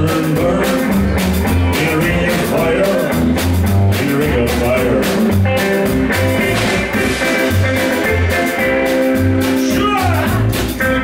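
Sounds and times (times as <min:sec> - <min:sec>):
bass line: 0:00.0 - 0:11.0
drums keeping a steady beat: 0:00.0 - 0:11.0
electric guitar: 0:00.0 - 0:11.0.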